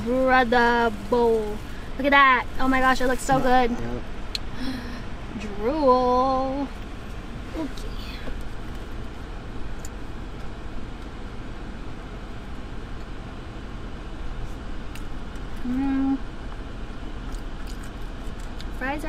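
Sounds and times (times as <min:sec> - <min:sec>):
car engine running inside cabin: 0:00.0 - 0:19.0.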